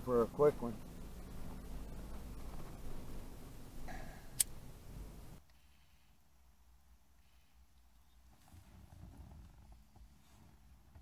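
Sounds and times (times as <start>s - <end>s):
vehicle driving rumble: 0.0s - 5.4s
sharp click: 4.4s - 4.6s.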